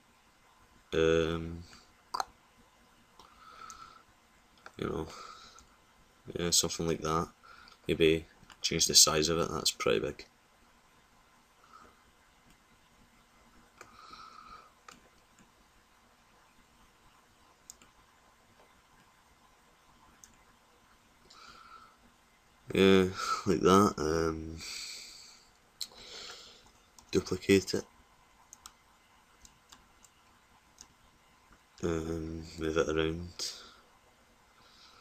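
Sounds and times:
faint mouse clicks: 17.6s - 18.0s, 28.5s - 28.8s, 29.4s - 31.8s
faint computer mouse clicks: 28.5s - 28.8s.

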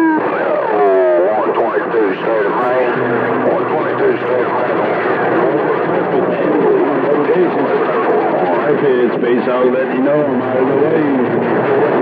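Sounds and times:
garbled radio voices: 0.0s - 12.0s
radio static hiss: 0.0s - 12.0s.

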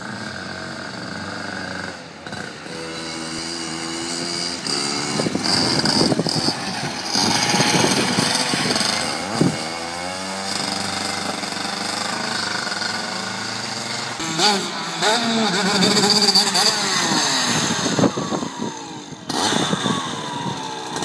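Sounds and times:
go-kart engine revving: 0.0s - 21.0s.

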